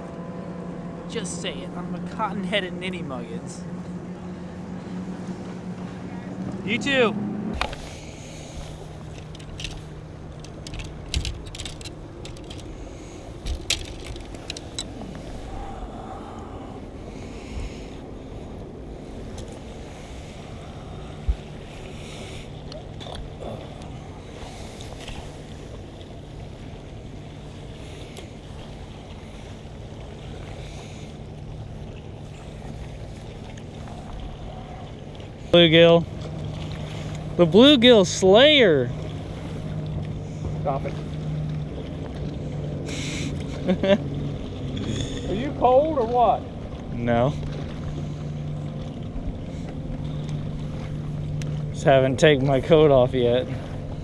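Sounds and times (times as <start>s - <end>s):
steady low hum: 0.0s - 54.0s
fishing rod and reel clicks: 7.6s - 7.9s, 8.6s - 12.8s, 13.4s - 15.0s.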